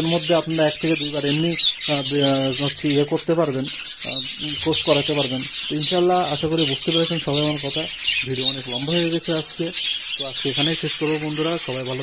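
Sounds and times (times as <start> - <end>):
budgerigars chattering and chirping: 0.0 - 12.0
man talking: 0.0 - 12.0.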